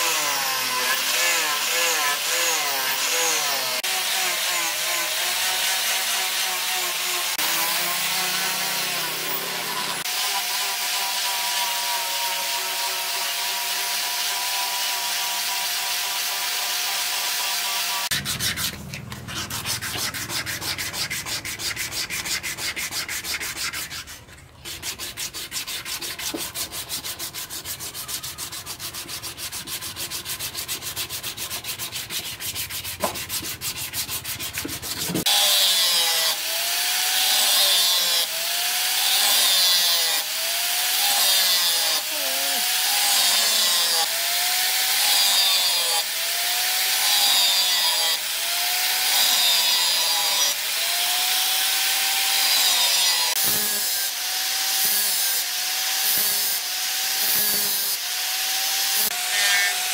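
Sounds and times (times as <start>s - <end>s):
angle grinder grinding steel: 0.0s - 59.9s
hand sanding back and forth: 0.0s - 59.9s.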